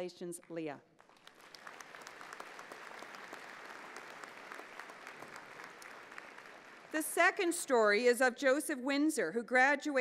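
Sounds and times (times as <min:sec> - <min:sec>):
audience applauding: 0:01.0 - 0:07.0.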